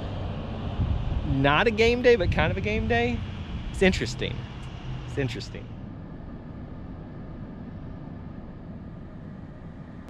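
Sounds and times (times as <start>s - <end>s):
car cabin hum and hiss: 0.0s - 10.0s.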